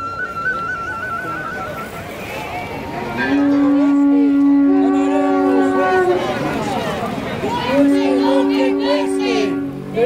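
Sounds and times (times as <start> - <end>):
horns blowing long notes: 0.0 - 10.0.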